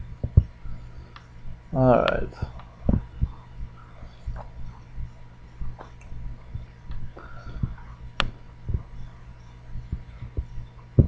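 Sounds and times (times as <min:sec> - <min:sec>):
steady low hum: 0:00.0 - 0:11.0
soft dull thumps: 0:02.4 - 0:03.4.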